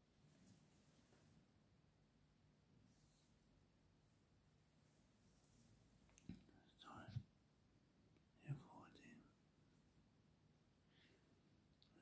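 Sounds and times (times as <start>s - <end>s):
faint whispered voice: 6.2s - 7.4s, 8.3s - 9.4s, 11.8s - 12.0s.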